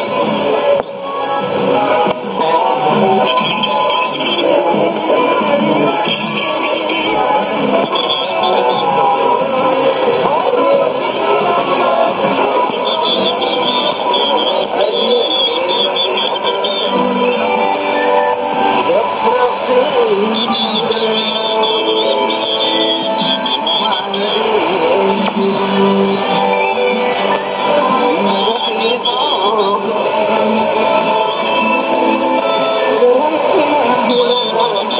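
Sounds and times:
am radio music with singing: 0:00.0 - 0:34.9.

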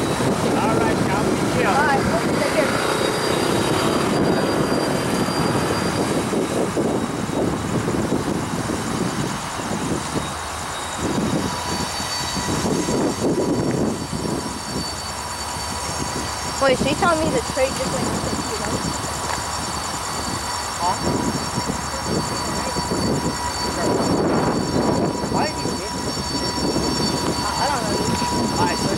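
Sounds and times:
high wheel squeal: 0:00.0 - 0:28.9
train wheels rumbling on rails: 0:00.0 - 0:28.9.

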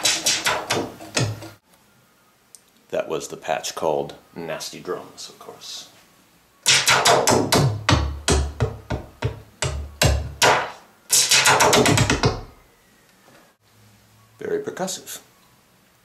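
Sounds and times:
synthesizer drum hits: 0:06.7 - 0:12.5.

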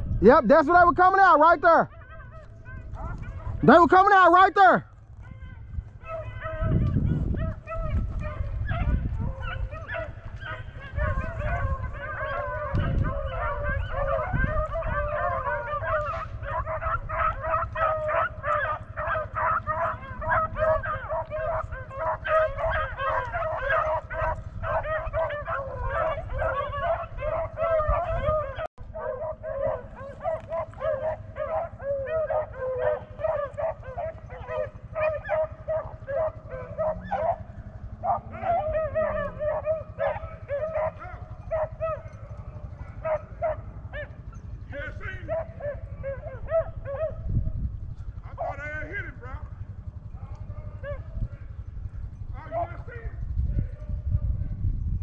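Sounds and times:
beagles baying and yelping: 0:00.0 - 0:54.1.

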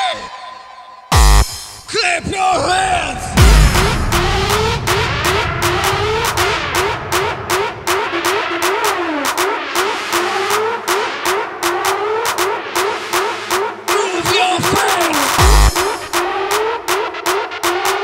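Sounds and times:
heavy bass kick drum: 0:01.1 - 0:01.8, 0:03.2 - 0:09.0, 0:14.3 - 0:16.4
synth swoops: 0:02.6 - 0:10.2
fast hi-hat and clap hits: 0:03.4 - 0:18.0.

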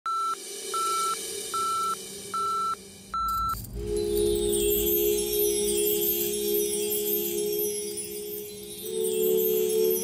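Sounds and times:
short electronic beeps: 0:00.1 - 0:03.6
chiming music: 0:03.2 - 0:10.0.

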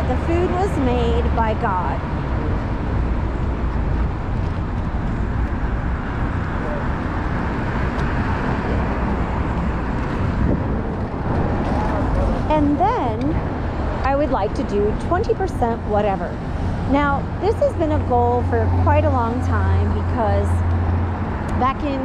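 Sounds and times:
city traffic: 0:00.0 - 0:22.0
vehicle passing by: 0:00.0 - 0:22.0
wind rumble on microphone: 0:00.0 - 0:22.0.

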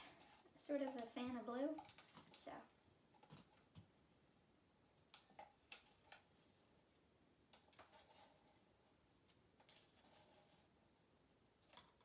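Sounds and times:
stir stick scraping plastic cups: 0:00.0 - 0:03.8, 0:05.1 - 0:06.4, 0:07.5 - 0:10.8.

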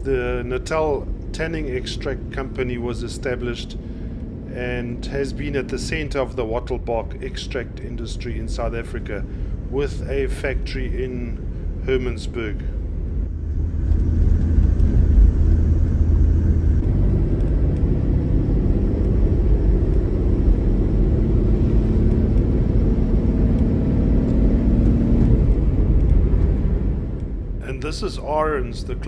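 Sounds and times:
engine and road noise inside vehicle: 0:00.0 - 0:29.0.

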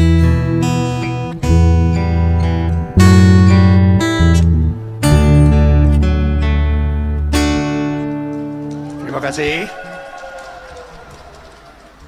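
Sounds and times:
acoustic guitar chord ringing: 0:00.0 - 0:08.6.

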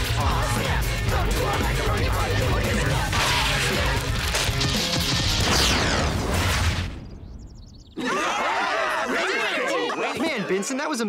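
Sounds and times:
pounding drum beat: 0:00.0 - 0:04.1.

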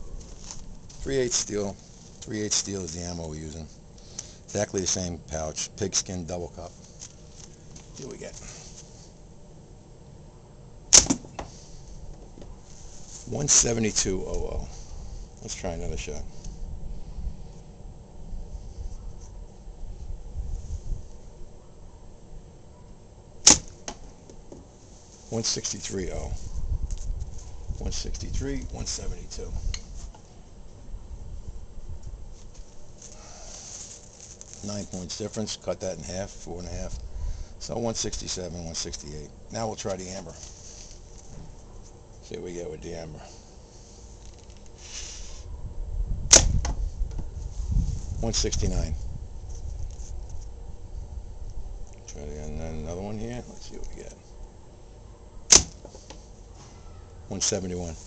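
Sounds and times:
sharp crack of ball impact: 0:10.9 - 0:11.5, 0:23.4 - 0:24.1, 0:46.3 - 0:46.8, 0:55.5 - 0:55.9.

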